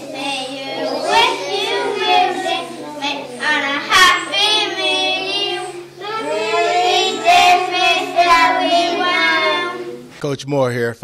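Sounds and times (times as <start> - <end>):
young children singing: 0.0 - 10.2.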